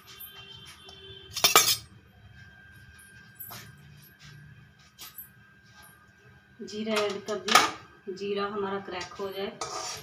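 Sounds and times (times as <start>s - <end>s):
kitchen utensils and jars clinking: 1.3s - 2.0s.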